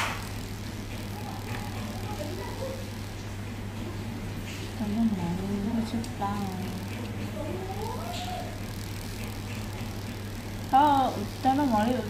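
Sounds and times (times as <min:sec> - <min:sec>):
steady low hum: 0:00.0 - 0:12.0
voice with wavering pitch: 0:04.8 - 0:08.8, 0:10.7 - 0:12.0.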